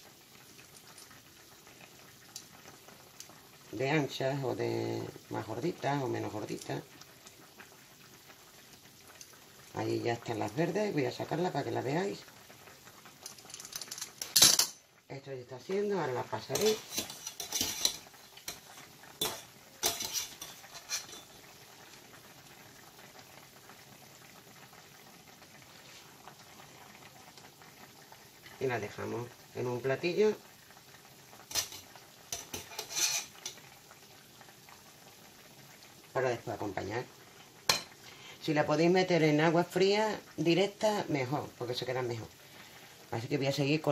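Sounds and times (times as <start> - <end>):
soup bubbling in a pan: 0.0 - 43.9
kitchen utensils clicking: 13.3 - 14.8, 16.5 - 21.4, 31.5 - 31.8, 32.4 - 33.6
utensils clattering: 13.3 - 14.8, 16.6 - 21.4, 31.5 - 33.6.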